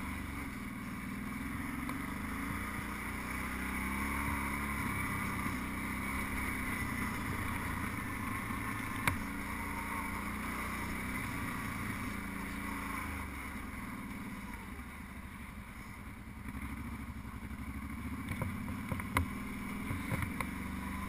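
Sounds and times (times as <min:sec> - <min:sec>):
atv engine running: 0:00.0 - 0:21.0
tires on gravel: 0:00.0 - 0:21.0.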